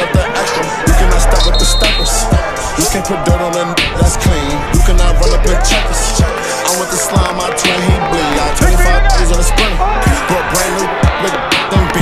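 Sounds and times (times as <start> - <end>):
hi-hats: 0.1 - 8.0.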